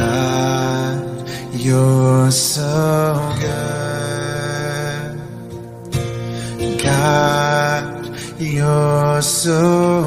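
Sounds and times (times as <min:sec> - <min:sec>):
person singing worship song: 0:00.0 - 0:10.0
soft musical accompaniment: 0:00.0 - 0:10.0.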